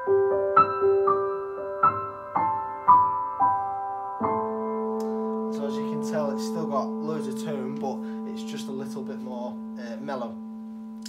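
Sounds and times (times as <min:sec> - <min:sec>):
piano notes and chord: 0:00.0 - 0:11.0.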